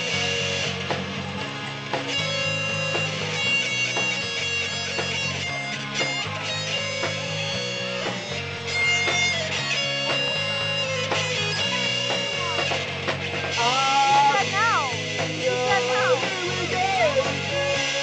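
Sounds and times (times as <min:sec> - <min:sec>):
drum hits: 0:00.0 - 0:17.8
bass line: 0:00.0 - 0:18.0
electric guitars: 0:00.0 - 0:18.0.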